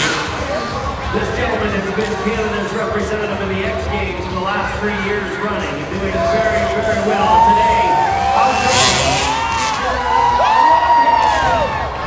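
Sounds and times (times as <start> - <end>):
crowd cheering: 0.0 - 12.0
crowd noise: 0.0 - 12.0
dirt bike engines revving: 0.0 - 12.0.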